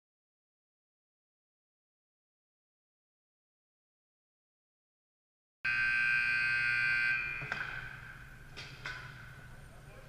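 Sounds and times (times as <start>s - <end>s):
arena horn sounding: 5.7s - 7.5s.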